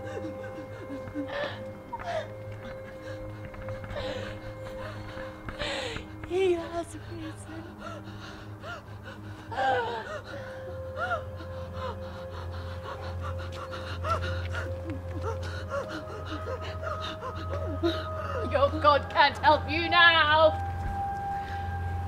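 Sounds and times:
woman gasping and whimpering: 0:00.0 - 0:18.9
droning held music tones: 0:00.0 - 0:22.0.

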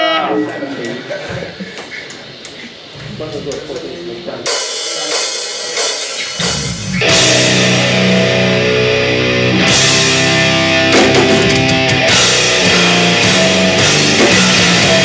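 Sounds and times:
drum and cymbal hits: 0:03.2 - 0:15.0
metal band playing: 0:03.2 - 0:15.0.

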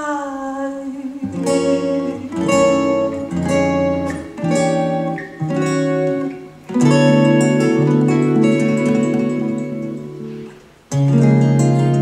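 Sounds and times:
acoustic guitars strumming jazz chords: 0:01.2 - 0:12.0.

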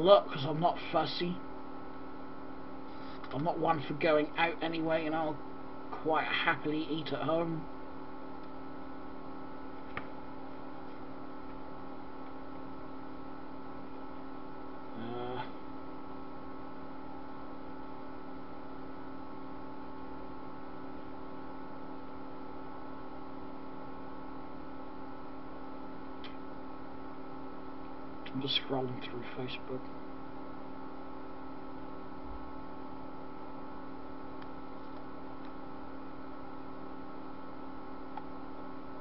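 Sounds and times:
steady electrical hum: 0:00.0 - 0:39.0
man murmuring: 0:14.9 - 0:15.6.

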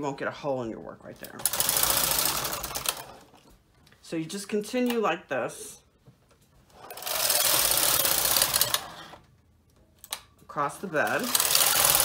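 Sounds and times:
knitting machine carriage clatter: 0:01.2 - 0:03.3, 0:06.8 - 0:09.0, 0:10.9 - 0:12.0.

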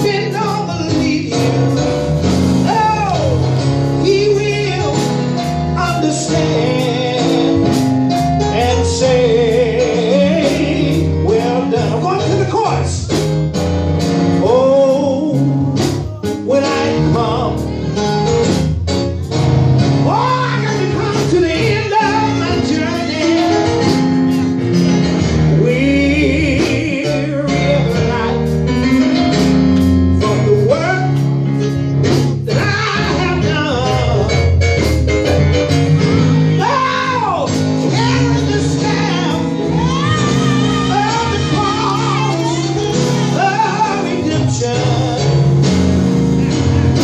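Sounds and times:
man singing into microphone: 0:00.0 - 0:02.0, 0:02.6 - 0:13.2, 0:14.4 - 0:17.8, 0:20.0 - 0:23.9, 0:25.5 - 0:29.4, 0:30.1 - 0:31.4, 0:32.4 - 0:34.6, 0:36.6 - 0:45.9
band playing gospel music: 0:00.0 - 0:47.0
woman singing along: 0:37.8 - 0:44.9.

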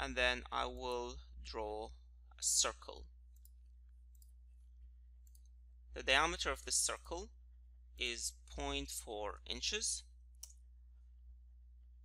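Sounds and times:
computer mouse clicks: 0:03.3 - 0:04.4.

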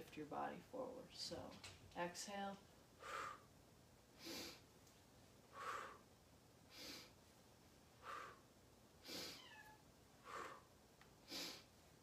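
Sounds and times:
person breathing quickly: 0:03.0 - 0:03.5, 0:04.2 - 0:04.6, 0:05.5 - 0:06.1, 0:06.7 - 0:07.2, 0:07.9 - 0:09.4, 0:10.2 - 0:11.8
faint cat meow: 0:09.3 - 0:09.8.

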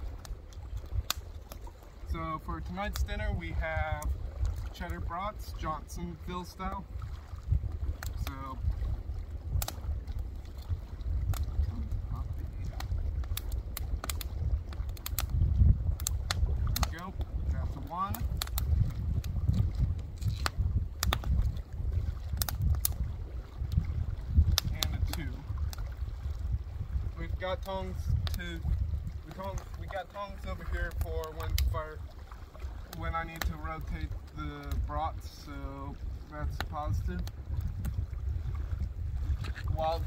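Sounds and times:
fire crackling and popping: 0:00.0 - 0:40.0
wind rumbling on microphone: 0:00.0 - 0:40.0.

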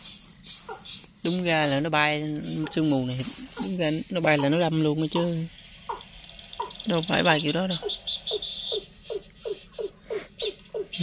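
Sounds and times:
bird call descending notes: 0:02.4 - 0:11.0.

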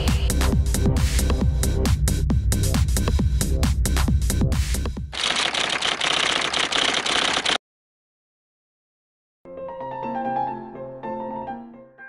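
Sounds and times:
electronic dance music: 0:00.0 - 0:00.4
rapid typewriter clatter: 0:05.2 - 0:07.6.

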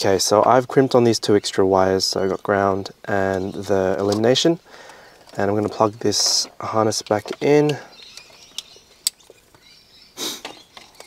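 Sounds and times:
plastic connectors clicking: 0:03.3 - 0:09.4.

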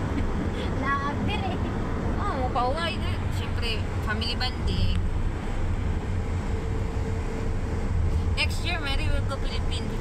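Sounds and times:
tyres engine and wind rumble: 0:00.0 - 0:10.0.

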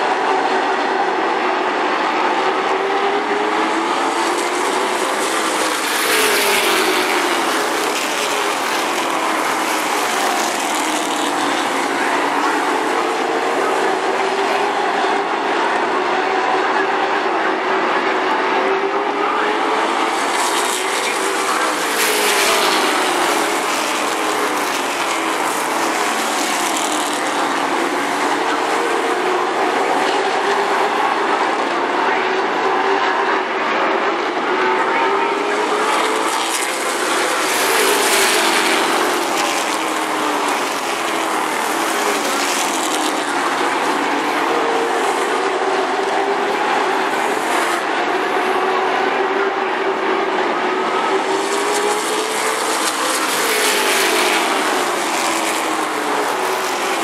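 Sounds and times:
stock car engines racing: 0:00.0 - 0:57.0.

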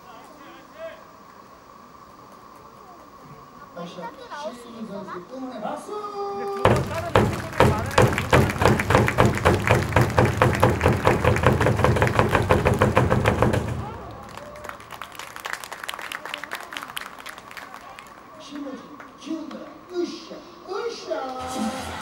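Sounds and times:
fast drum beats over deep bass: 0:06.7 - 0:13.9.

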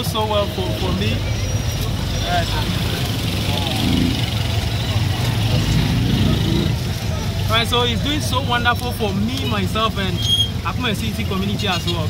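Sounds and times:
faint voices: 0:00.0 - 0:12.0
road noise: 0:00.0 - 0:12.0.

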